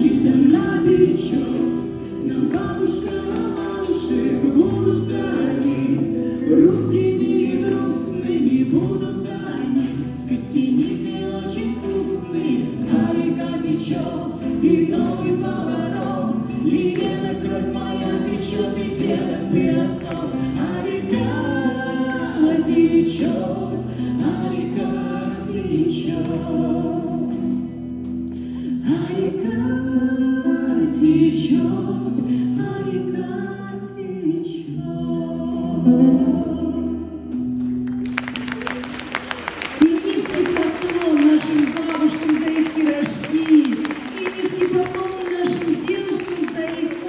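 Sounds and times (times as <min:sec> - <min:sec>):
woman and man singing: 0:00.0 - 0:37.6, 0:39.4 - 0:47.0
acoustic guitar: 0:00.0 - 0:47.0.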